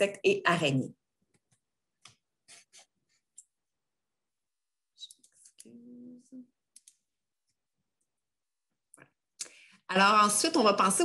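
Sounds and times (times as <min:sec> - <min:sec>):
murmured vocal sound: 0:05.6 - 0:06.6
computer mouse clicks: 0:06.7 - 0:07.1.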